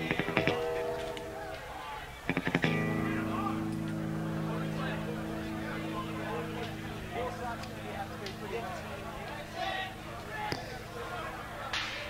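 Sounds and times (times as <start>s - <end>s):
faint crowd chatter: 0.0s - 12.0s
amplifier hum: 2.3s - 11.7s.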